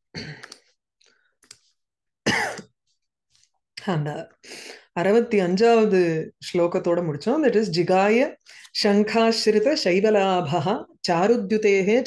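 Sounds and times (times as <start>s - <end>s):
woman clearing her throat: 2.2s - 2.7s.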